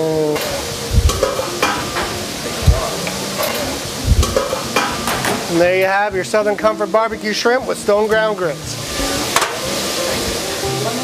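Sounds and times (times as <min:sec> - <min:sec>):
metal pan and tongs clicking: 0:00.4 - 0:02.1.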